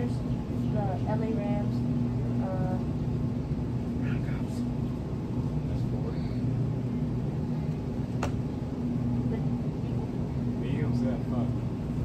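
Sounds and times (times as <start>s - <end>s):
freezer display cases humming: 0.0s - 12.0s.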